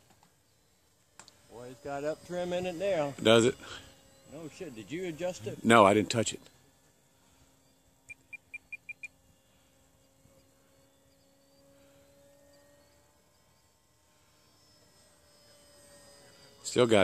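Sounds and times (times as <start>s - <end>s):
faint distant motor drone: 0.0s - 17.0s
quick electronic beeps: 8.1s - 9.1s.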